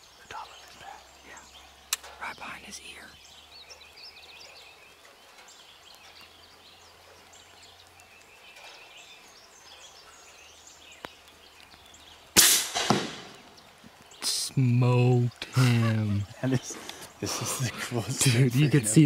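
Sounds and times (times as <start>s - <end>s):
air rifle shot: 12.4s - 13.4s.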